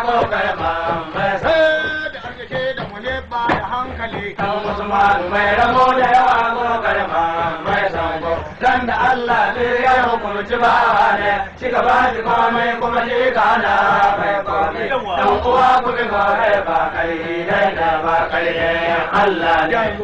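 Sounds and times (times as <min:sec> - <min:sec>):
chant-like singing: 0:00.0 - 0:20.0.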